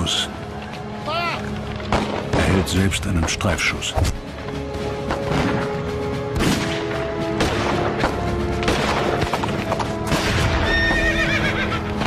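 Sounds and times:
hoofbeats: 0:08.0 - 0:12.0
horse whinnying: 0:10.6 - 0:12.0.

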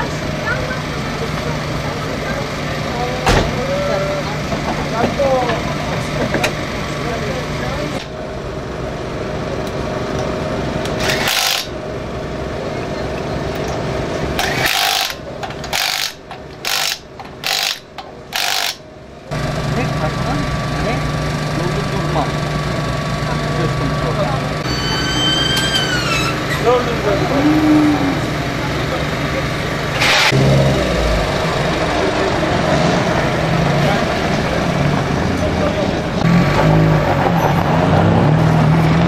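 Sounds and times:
steady service area hum: 0:00.0 - 0:36.7
pneumatic impact wrench bursts: 0:10.9 - 0:11.8, 0:14.4 - 0:18.8, 0:29.9 - 0:30.5.

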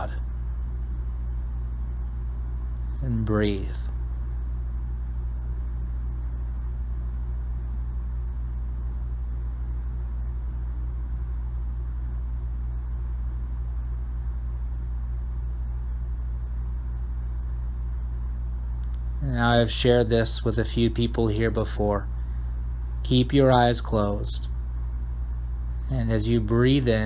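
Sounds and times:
low hum and rumble: 0:00.0 - 0:27.0.

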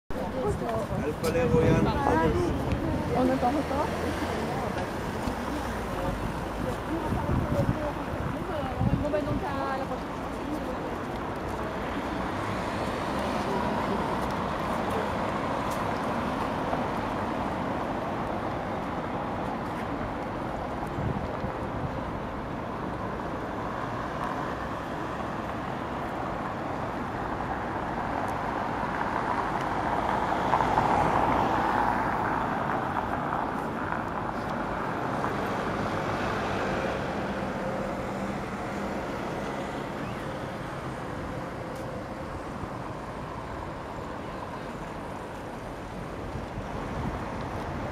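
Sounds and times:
city traffic noise: 0:00.1 - 0:47.9
vehicle passing: 0:00.2 - 0:10.9.

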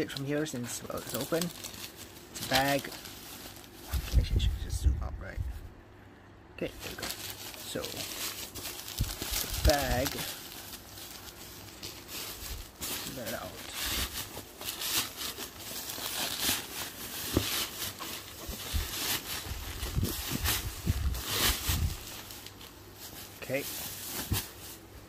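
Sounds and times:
plastic mailer rustling and crinkling: 0:00.0 - 0:05.7, 0:06.6 - 0:25.0.

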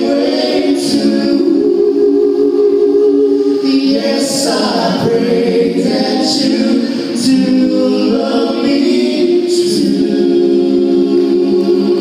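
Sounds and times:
male vocal group singing: 0:00.0 - 0:12.0.

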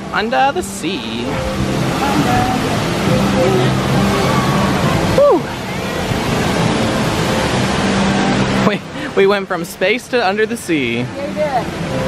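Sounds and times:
waterfall rushing: 0:00.0 - 0:12.0
crowd murmur: 0:01.4 - 0:08.0.

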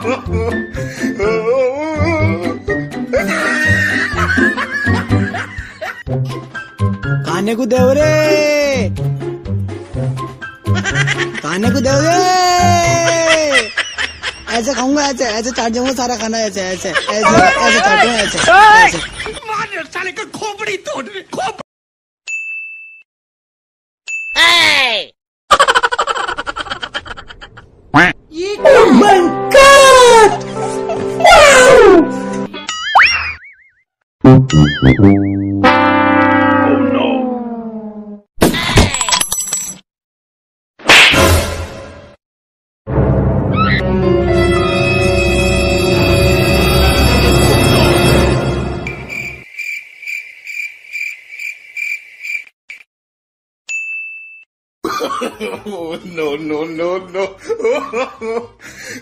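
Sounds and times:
high bell-like ding: 0:22.3 - 0:23.0, 0:53.7 - 0:54.5
dramatic music: 0:42.9 - 0:49.3
cricket chirping: 0:48.9 - 0:52.9.

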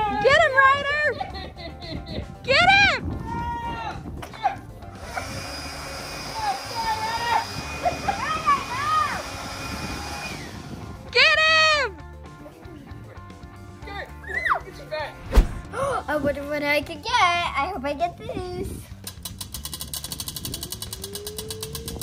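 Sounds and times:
electric leaf blower whining: 0:04.9 - 0:11.0.

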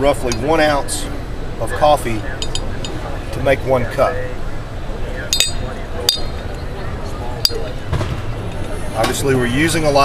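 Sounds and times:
murmur of voices: 0:00.0 - 0:10.0
spoon clinking against glass: 0:05.3 - 0:06.4.

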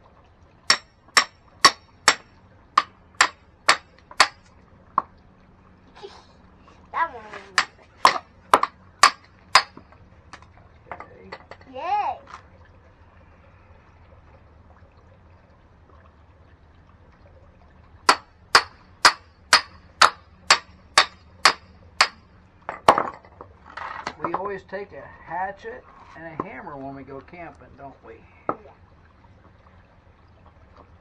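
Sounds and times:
hammer striking hatchet head: 0:00.7 - 0:02.2, 0:07.6 - 0:09.8, 0:18.1 - 0:22.2.

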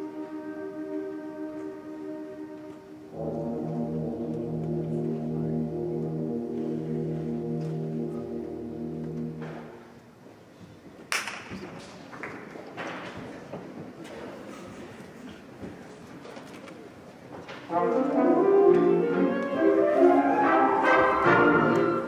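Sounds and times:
concert band sustained chord: 0:00.0 - 0:10.0.

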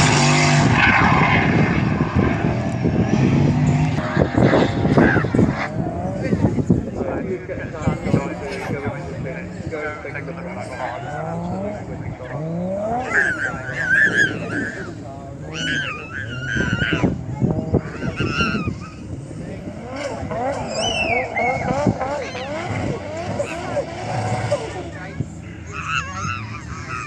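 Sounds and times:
car engine revving hard: 0:00.0 - 0:27.0
tyres squealing: 0:10.1 - 0:19.3, 0:19.9 - 0:27.0.

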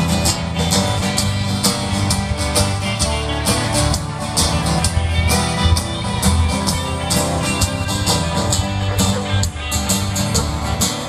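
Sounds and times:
electric bass: 0:00.0 - 0:11.0
guitar: 0:00.0 - 0:11.0.

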